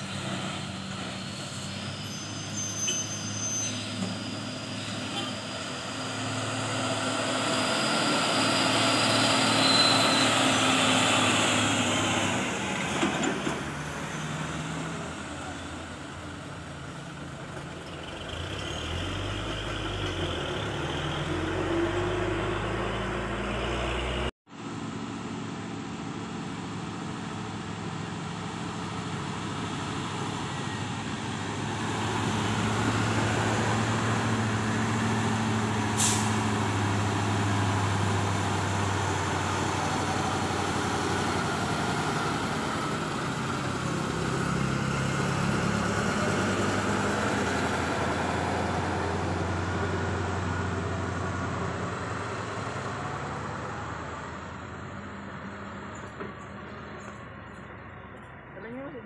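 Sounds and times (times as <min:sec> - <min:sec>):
truck diesel engine labouring: 0:00.0 - 0:59.0
sharp hiss of air: 0:35.9 - 0:36.5.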